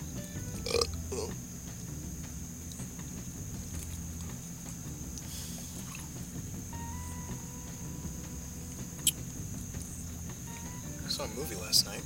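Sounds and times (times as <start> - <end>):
faint music: 0.0 - 12.0
steady low hum: 0.0 - 12.0
man's throaty vocal sounds: 0.7 - 1.4.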